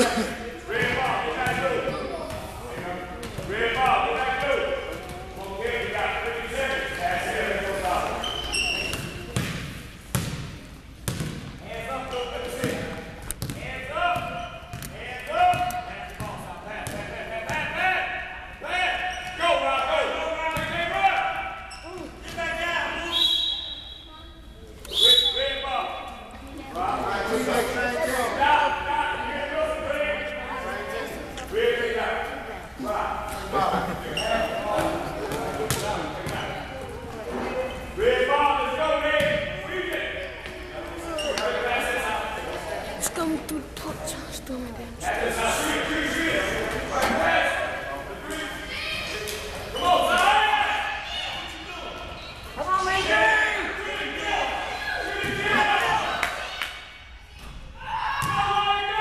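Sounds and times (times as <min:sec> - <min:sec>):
basketball bouncing on gym floor: 0:08.8 - 0:11.5, 0:12.6 - 0:17.6.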